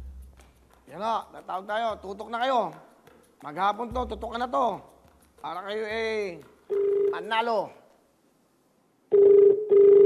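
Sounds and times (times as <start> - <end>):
telephone ringback tone: 6.7 - 7.1, 9.1 - 10.0.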